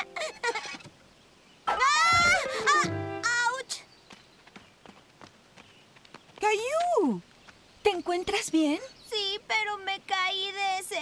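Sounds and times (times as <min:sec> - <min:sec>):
child yelling in fright: 0:01.7 - 0:03.7
background music: 0:02.1 - 0:03.4.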